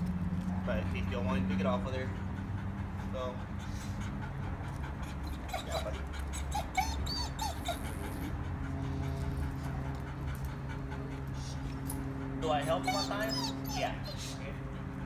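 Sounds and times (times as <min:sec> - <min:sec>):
low background hum: 0:00.0 - 0:15.0
dog whimpering: 0:01.4 - 0:09.6, 0:12.2 - 0:15.0.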